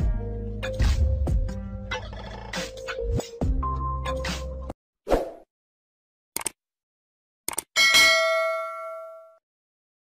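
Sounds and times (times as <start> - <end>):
notification bell ding: 7.8 - 9.4.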